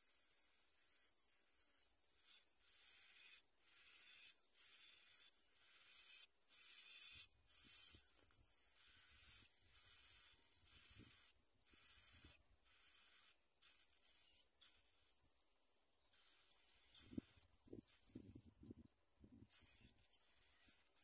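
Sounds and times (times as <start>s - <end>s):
nestlings begging calls: 0.8s - 15.1s, 16.1s - 18.4s, 19.5s - 21.0s.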